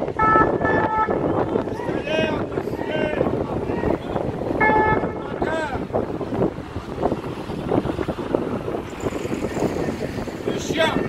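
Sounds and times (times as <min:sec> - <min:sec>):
vehicle engines and tyres rumbling: 0:00.0 - 0:11.0
wind buffeting microphone: 0:00.0 - 0:11.0.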